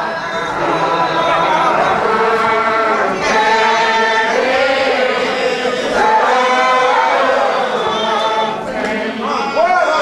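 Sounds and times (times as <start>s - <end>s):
congregation singing unaccompanied: 0.0s - 10.0s.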